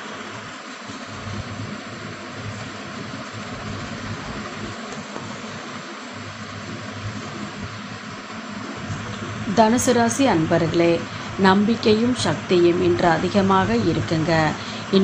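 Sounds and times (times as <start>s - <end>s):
faint low hum: 0.0s - 15.0s
steady background hiss: 0.0s - 15.0s.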